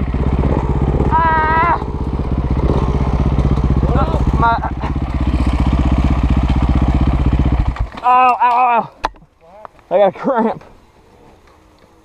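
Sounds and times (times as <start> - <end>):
dirt bike engine running: 0.0 - 8.0.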